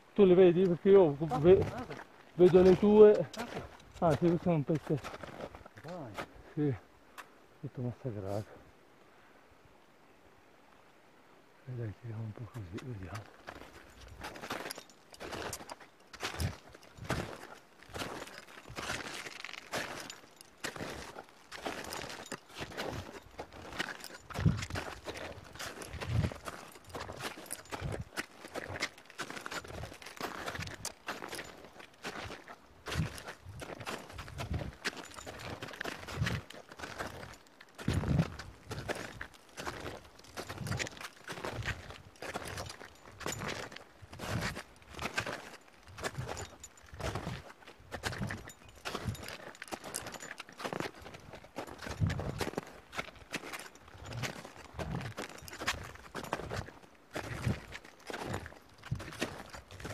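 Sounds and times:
boots crunching in snow: 0:13.1 - 0:59.9.

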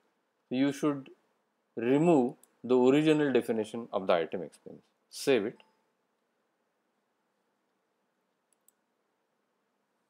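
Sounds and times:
faint computer mouse clicks: 0:08.5 - 0:08.9.

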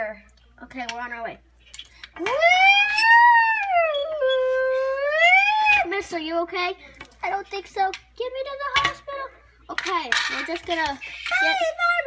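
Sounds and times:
child imitating a siren: 0:02.2 - 0:05.9.

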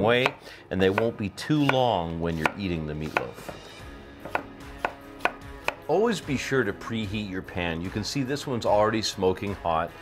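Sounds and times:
knife slicing onion: 0:00.0 - 0:05.9
knife tapping wooden cutting board: 0:00.1 - 0:01.8, 0:02.4 - 0:03.6, 0:04.2 - 0:05.8.

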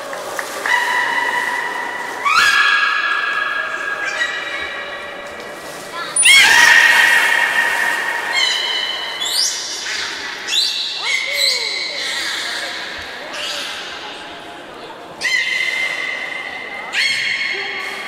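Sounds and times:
whales whistling: 0:06.2 - 0:10.8.

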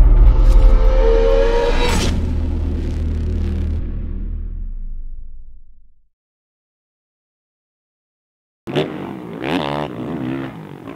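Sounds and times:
deep rumble: 0:00.0 - 0:06.1
whoosh: 0:00.0 - 0:06.1.

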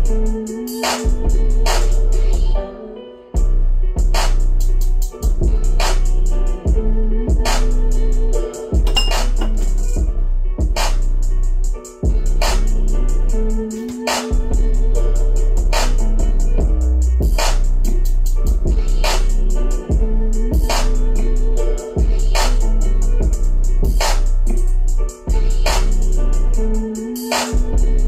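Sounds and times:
drum machine beat: 0:00.0 - 0:02.0, 0:03.4 - 0:28.0
deep subwoofer bass notes: 0:01.1 - 0:02.6, 0:03.4 - 0:13.7, 0:14.4 - 0:26.9, 0:27.6 - 0:28.0.

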